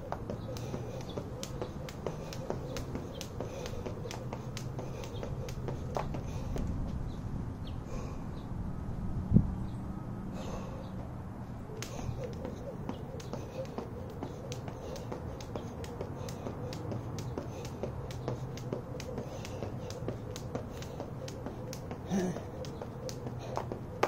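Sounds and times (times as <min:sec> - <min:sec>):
jump rope slapping asphalt: 0:00.0 - 0:06.7, 0:11.7 - 0:24.0.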